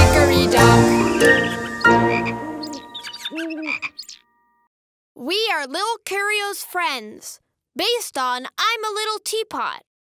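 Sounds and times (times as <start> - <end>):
children's song: 0.0 - 3.6
cartoon frog croak: 1.2 - 4.2.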